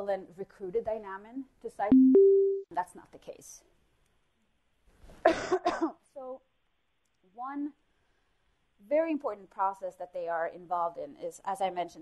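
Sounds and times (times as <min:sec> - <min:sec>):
person coughing: 0:05.3 - 0:06.0.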